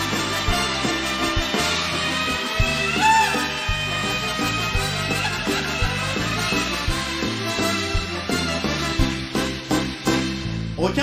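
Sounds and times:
bright note bending in pitch: 0.0s - 9.1s
walking bass line: 0.0s - 10.8s
live band playing: 0.0s - 11.0s.

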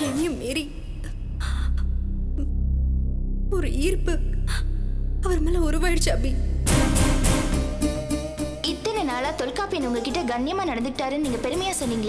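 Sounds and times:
low background music: 0.0s - 12.0s.

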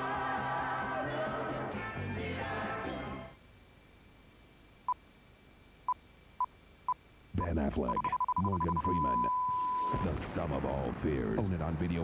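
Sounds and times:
faint tape hiss: 0.0s - 12.0s
short electronic beeps: 7.4s - 10.1s.

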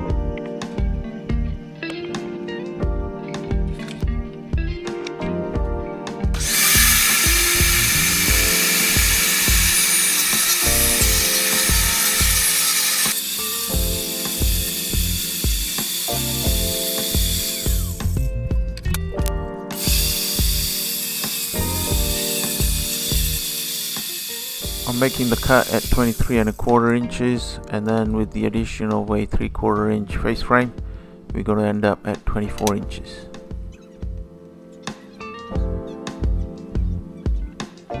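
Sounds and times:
background music with steady beat: 0.0s - 38.0s
table saw cutting plywood: 6.4s - 18.3s, 19.7s - 26.6s.

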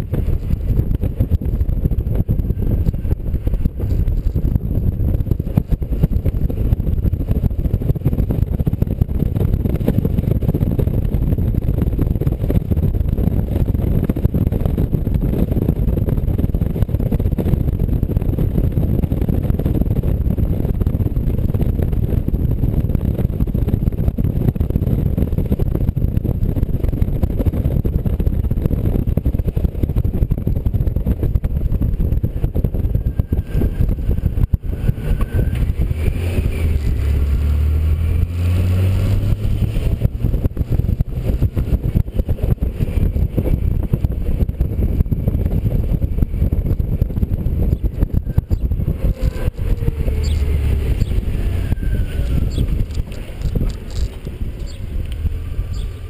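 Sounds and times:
car road noise: 0.0s - 56.0s
wind rumbling on microphone: 0.0s - 56.0s.

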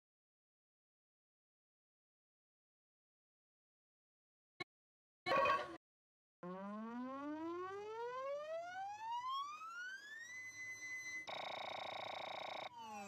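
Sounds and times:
electronic tone rising: 6.4s - 11.2s
falling electronic tone: 6.4s - 13.0s.

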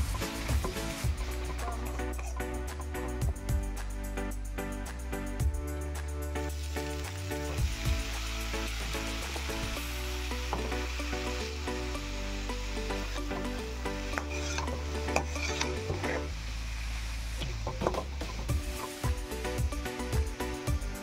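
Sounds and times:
food sizzling in hot oil: 0.0s - 4.6s, 5.4s - 21.0s
metal spatula scraping a wok: 14.2s - 16.3s.

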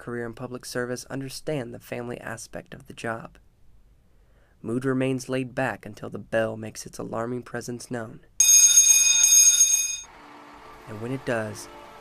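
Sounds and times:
alarm bell ringing: 8.4s - 10.1s.

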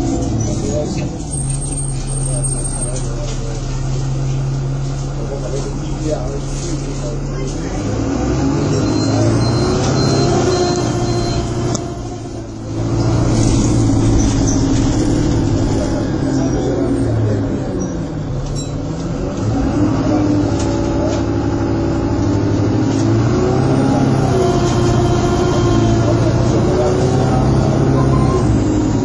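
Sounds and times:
bus engine running: 0.0s - 29.0s.

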